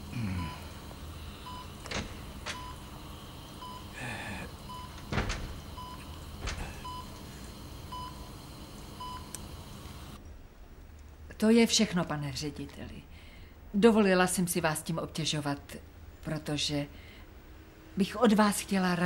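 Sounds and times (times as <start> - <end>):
man sighing: 0.0 - 0.8, 3.9 - 4.6
patient monitor beeping: 0.1 - 8.4, 9.0 - 9.4.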